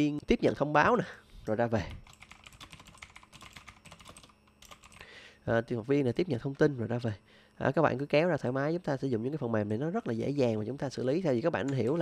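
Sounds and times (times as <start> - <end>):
typing on computer keyboard: 2.0 - 5.1.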